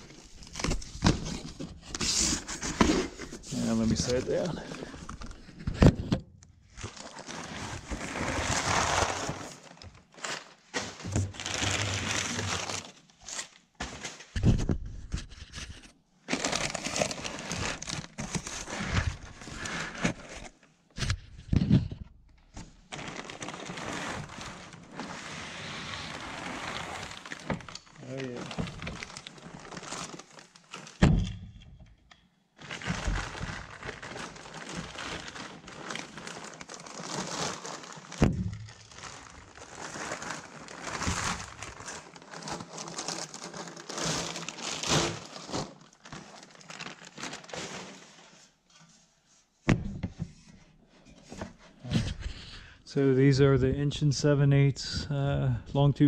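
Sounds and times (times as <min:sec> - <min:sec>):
paper and plastic wrap crinkling: 0:00.0 - 0:05.6, 0:06.7 - 0:20.6, 0:22.8 - 0:31.0, 0:32.6 - 0:48.8.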